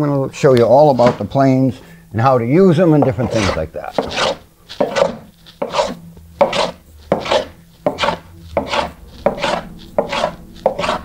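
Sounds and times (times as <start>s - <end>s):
hand plane shaving wood: 0.7s - 1.3s, 2.9s - 11.0s.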